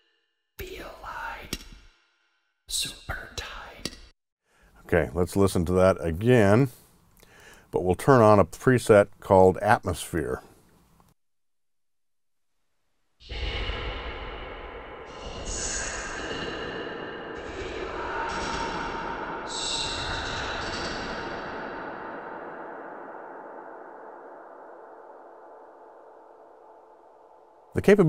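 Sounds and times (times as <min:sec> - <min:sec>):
breathy whispers with deep reverb: 0:00.6 - 0:01.7, 0:02.7 - 0:04.0, 0:13.2 - 0:27.8.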